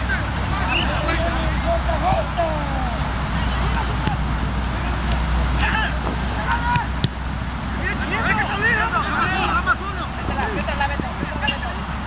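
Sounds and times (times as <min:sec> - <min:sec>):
players shouting: 0:00.0 - 0:12.0
steady low rumble: 0:00.0 - 0:12.0.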